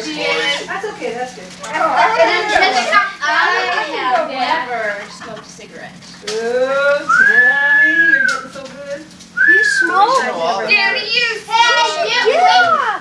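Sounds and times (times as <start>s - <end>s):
adults and children laughing: 1.7s - 4.0s, 4.7s - 5.7s.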